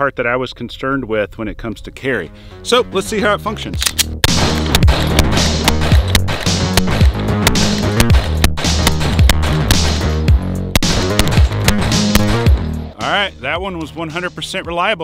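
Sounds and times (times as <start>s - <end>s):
background music with bass line: 2.5s - 15.0s
pistol shots: 3.8s - 10.2s, 10.8s - 12.6s.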